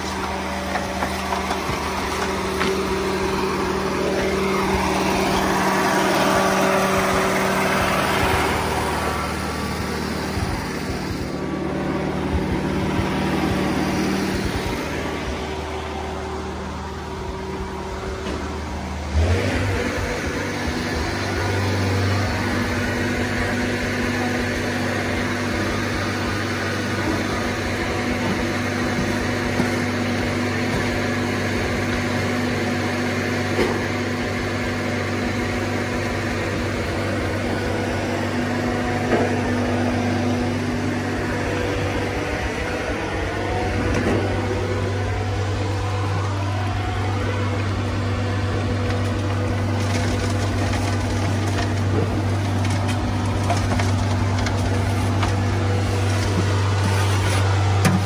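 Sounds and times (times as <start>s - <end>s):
machine engine running: 0.0s - 58.0s.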